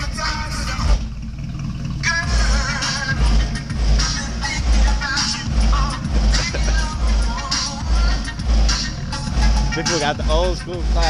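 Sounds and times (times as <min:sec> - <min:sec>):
hip hop music from car stereo: 0:00.0 - 0:01.1, 0:02.0 - 0:11.0.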